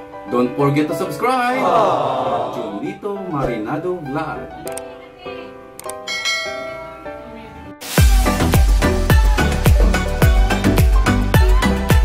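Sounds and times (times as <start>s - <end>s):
ringing bell chime: 6.1s - 7.2s.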